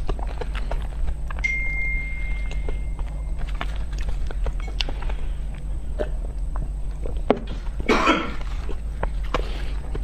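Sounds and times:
wet chewing clicks: 0.0s - 1.5s, 2.3s - 7.3s
steady low hum: 0.0s - 10.0s.

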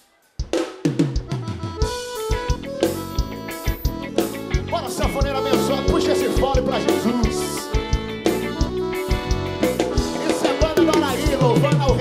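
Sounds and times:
drum kit beat: 0.0s - 12.0s
accordion notes: 1.0s - 12.0s
electric bass: 1.6s - 12.0s.

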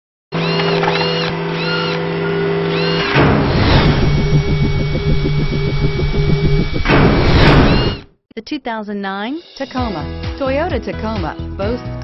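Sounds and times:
rapidly pulsing low rumble: 3.3s - 8.0s.

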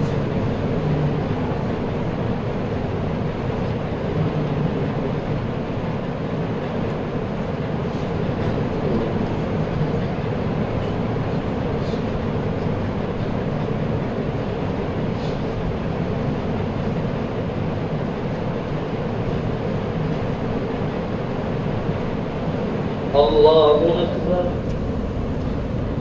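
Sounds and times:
ceiling fans humming: 0.0s - 26.0s.

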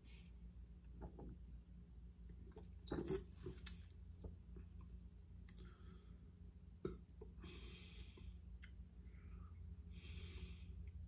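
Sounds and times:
low steady hum: 0.0s - 11.0s
person gulping a drink: 0.9s - 1.4s, 2.3s - 3.7s.

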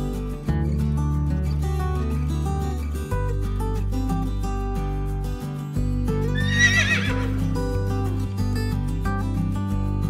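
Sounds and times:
background music: 0.0s - 10.0s
horse whinnying: 6.3s - 7.4s.

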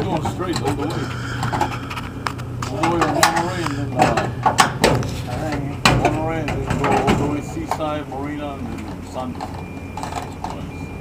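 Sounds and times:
men talking indistinctly: 0.0s - 1.9s, 2.6s - 10.8s.

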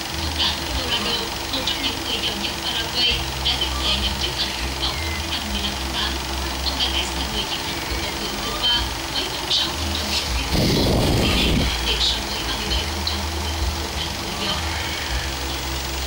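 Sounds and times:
loud burst of noise: 0.0s - 16.0s
steady low hum: 0.0s - 16.0s
television music: 0.0s - 16.0s.

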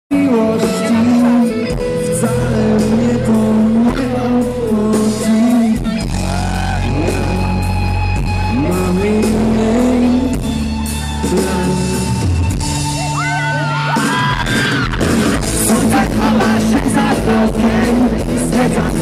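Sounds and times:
man singing: 0.1s - 12.6s, 15.4s - 19.0s
bass guitar: 0.1s - 19.0s
drums: 0.1s - 19.0s
electric guitars: 0.1s - 19.0s.

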